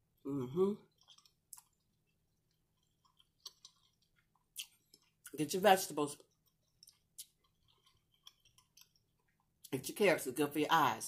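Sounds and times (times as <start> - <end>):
soft chewing: 0.7 - 9.8.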